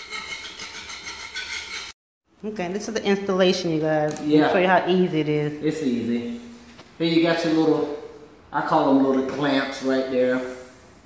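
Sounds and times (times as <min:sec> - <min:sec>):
metal blade scraping concrete: 0:00.0 - 0:02.0.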